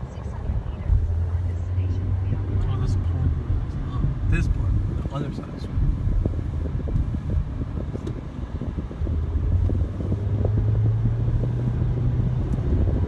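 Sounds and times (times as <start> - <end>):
car engine hum: 0.0 - 13.0
road rumble: 0.0 - 13.0.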